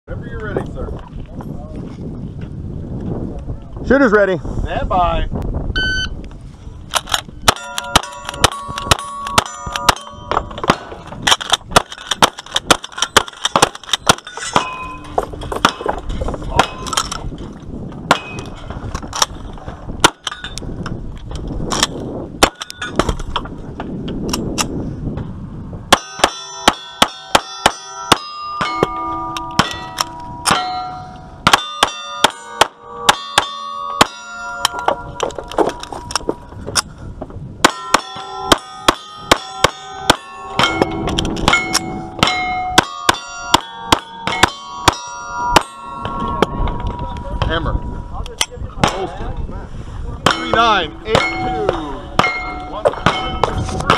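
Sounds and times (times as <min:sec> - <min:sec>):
steel targets ringing clang: 0:07.5 - 0:17.2, 0:18.1 - 0:18.6, 0:25.9 - 0:36.6, 0:37.6 - 0:49.2, 0:50.2 - 0:53.9.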